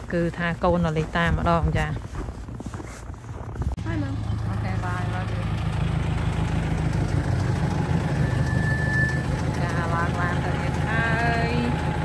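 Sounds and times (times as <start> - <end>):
car engine running: 3.1 - 12.0
high-pitched tone: 7.7 - 11.2.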